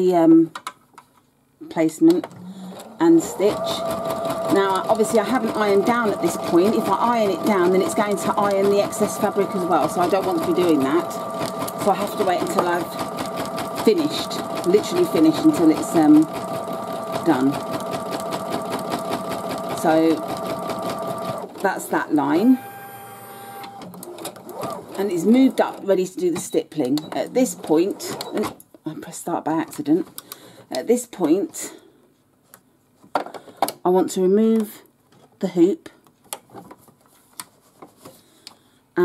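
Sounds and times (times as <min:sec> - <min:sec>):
embroidery machine motor whine: 0:02.4 - 0:18.6, 0:22.4 - 0:23.9
needle strokes ticking: 0:03.8 - 0:21.4.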